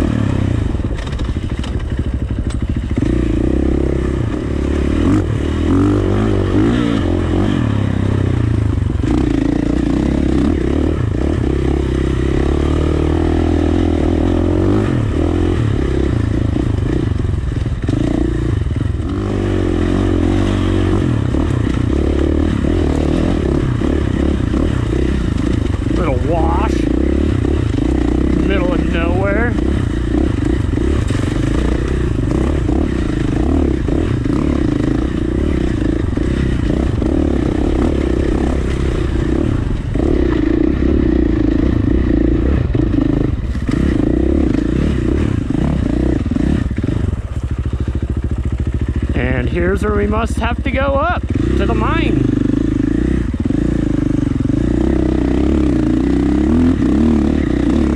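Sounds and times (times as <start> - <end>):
dirt bike engine revving: 0.0 - 57.9.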